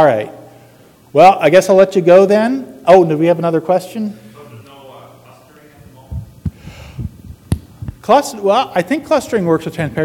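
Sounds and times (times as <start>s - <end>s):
dull low thumps on microphone: 5.9s - 8.0s.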